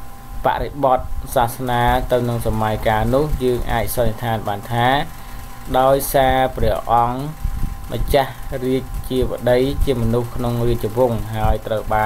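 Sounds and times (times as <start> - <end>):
person narrating: 0.4 - 12.0.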